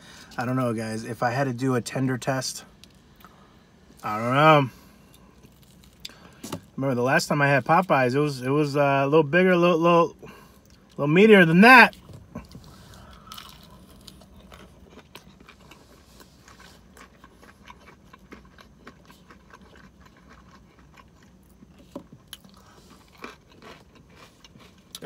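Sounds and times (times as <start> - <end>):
person chewing crunchy food: 2.7 - 6.8, 11.8 - 25.0.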